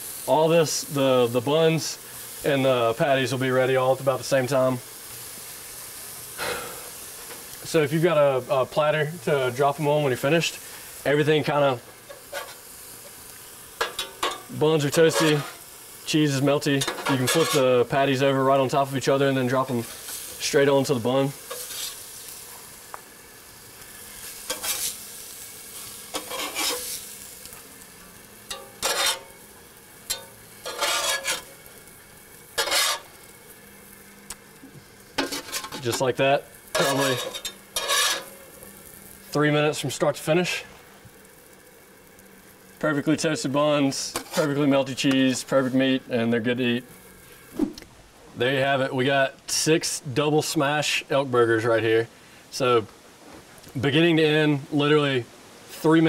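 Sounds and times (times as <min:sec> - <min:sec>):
patties sizzling on a griddle: 0:00.0 - 0:56.0
breathy puff: 0:06.4 - 0:06.9
metal spatula scraping: 0:12.1 - 0:12.7, 0:13.8 - 0:15.6, 0:16.8 - 0:17.8, 0:21.4 - 0:22.5, 0:24.3 - 0:27.3, 0:28.5 - 0:29.4, 0:30.1 - 0:31.6, 0:32.6 - 0:33.2, 0:35.2 - 0:36.1, 0:36.7 - 0:38.4, 0:44.1 - 0:44.6.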